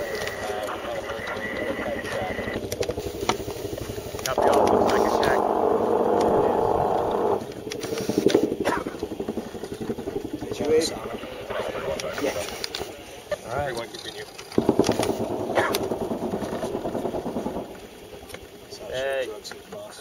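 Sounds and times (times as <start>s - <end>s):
scattered clicks: 0.0s - 13.0s, 13.8s - 18.5s
squelchy radio transmission: 0.0s - 14.2s
outdoor ambience: 0.0s - 20.0s.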